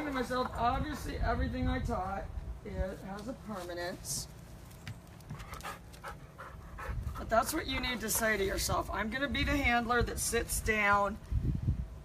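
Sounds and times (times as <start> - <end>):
dog panting: 5.3 - 8.7.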